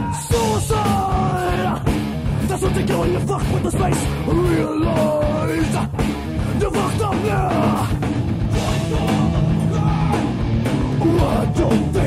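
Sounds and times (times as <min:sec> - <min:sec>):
distorted guitars and drums: 0:00.0 - 0:12.0.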